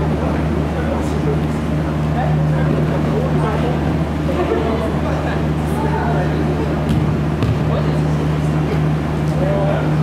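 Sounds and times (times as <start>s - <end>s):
ball being kicked: 6.9s - 7.8s.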